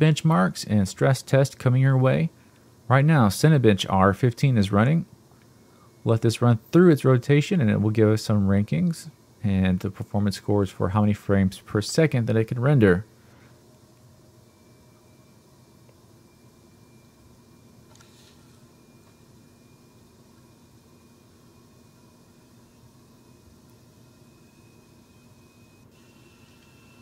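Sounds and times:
steady hum and hiss: 0:00.0 - 0:27.0
thin high whine: 0:00.0 - 0:27.0.

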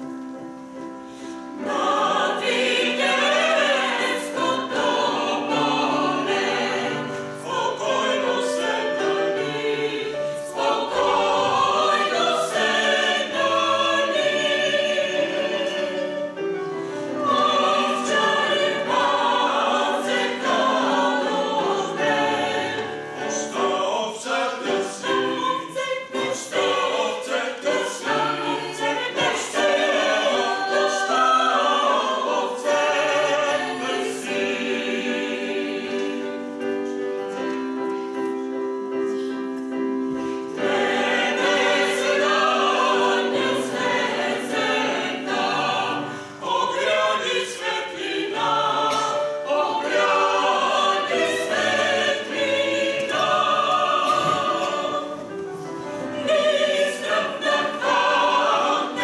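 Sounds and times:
keyboard accompaniment: 0:00.0 - 0:59.0
choir singing a hymn: 0:01.0 - 0:59.0.

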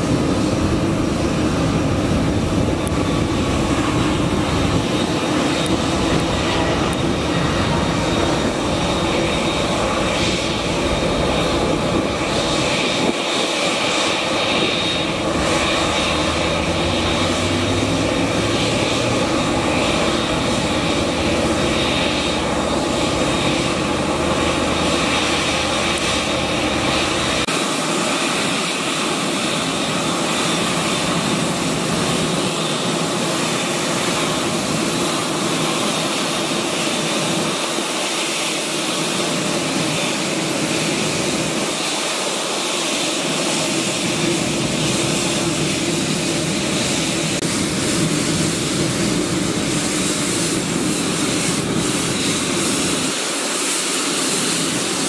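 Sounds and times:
jet engines at taxi power: 0:00.0 - 0:55.0.

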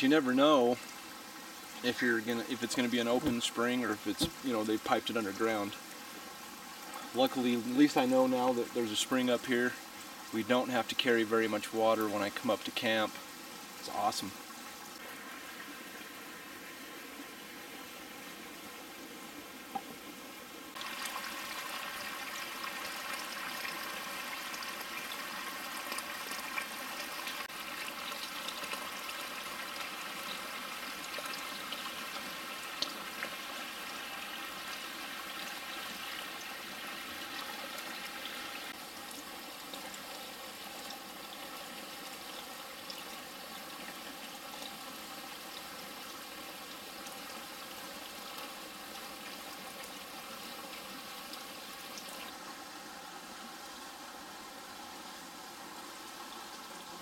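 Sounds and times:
spring water trickling: 0:00.0 - 0:57.0.

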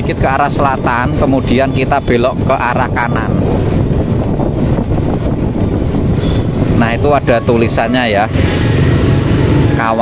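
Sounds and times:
motorcycle engine: 0:00.0 - 0:10.0
road rumble: 0:00.0 - 0:10.0.

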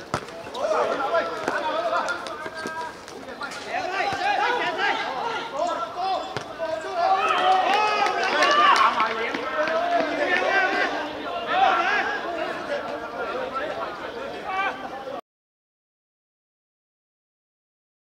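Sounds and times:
football being kicked: 0:00.0 - 0:00.4
men shouting: 0:03.7 - 0:15.0.

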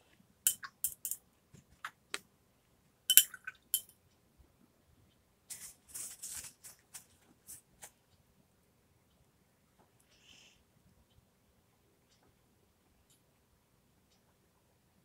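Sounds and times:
paintbrush clinking on glass jar: 0:00.5 - 0:01.2, 0:03.1 - 0:03.9.

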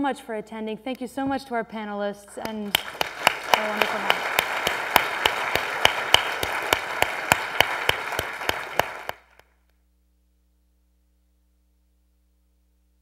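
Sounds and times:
audience applauding: 0:02.4 - 0:09.4
sharp hand claps: 0:02.4 - 0:09.4.

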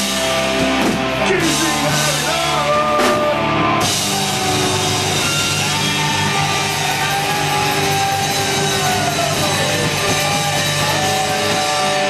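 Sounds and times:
bass guitar: 0:00.0 - 0:12.0
distorted electric guitar: 0:00.0 - 0:12.0
drum kit: 0:00.0 - 0:12.0.

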